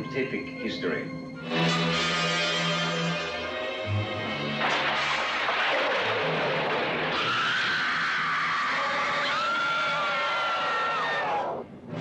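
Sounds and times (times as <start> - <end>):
high bending cries: 7.1 - 11.6
shrill screeching: 7.1 - 11.6.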